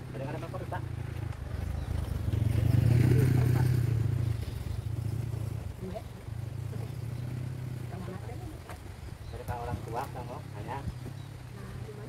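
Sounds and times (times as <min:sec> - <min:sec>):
motorcycle passing by: 0:00.0 - 0:12.0.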